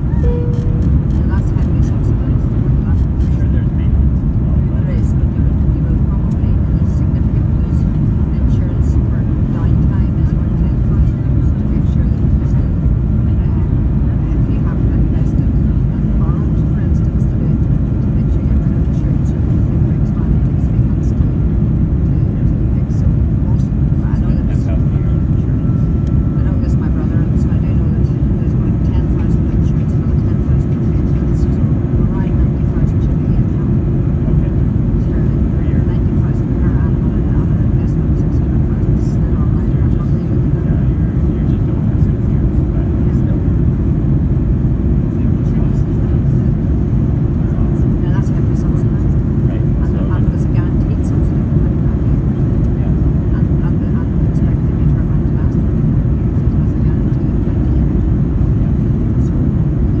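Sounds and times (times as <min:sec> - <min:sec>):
aircraft cabin engine roar: 0:00.0 - 1:00.0.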